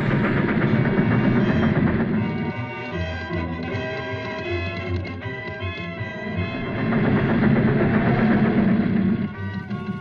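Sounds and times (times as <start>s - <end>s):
steam locomotive chugging: 0.0s - 10.0s
train wheel clatter: 0.0s - 10.0s.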